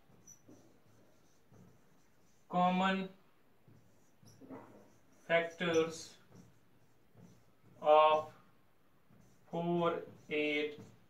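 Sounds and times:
marker squeaking on whiteboard: 0.0 - 11.0.

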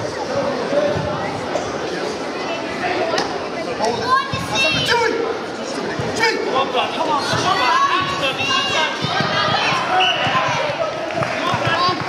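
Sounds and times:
crowd shouting: 6.4 - 12.0.

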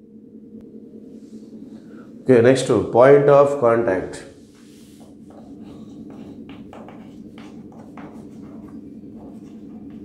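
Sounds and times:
steady low hum: 0.0 - 10.0
chalk scratching on chalkboard: 4.4 - 10.0.

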